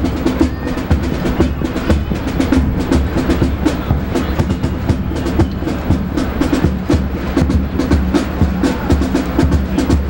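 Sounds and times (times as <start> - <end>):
drum strokes: 0.0 - 10.0
marching band playing: 0.0 - 10.0.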